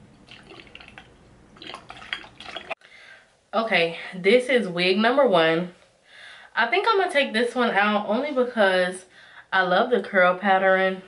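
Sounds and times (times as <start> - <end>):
liquid pouring and dripping: 0.0 - 2.8.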